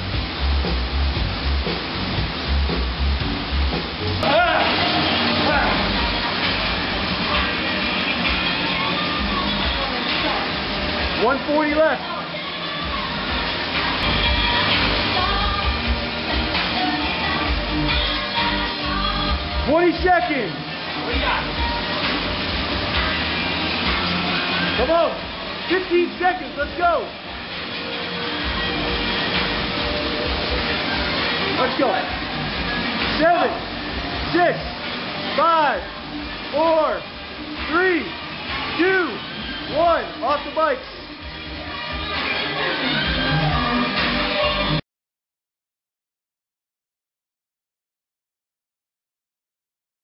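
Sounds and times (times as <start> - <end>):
background music: 0.0 - 44.8
person calling out: 4.2 - 4.8
person shouting: 4.2 - 5.8.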